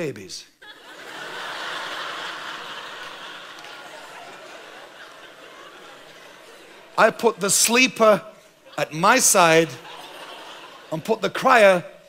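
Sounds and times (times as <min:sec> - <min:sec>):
audience laughing: 0:00.6 - 0:07.6, 0:08.4 - 0:11.5.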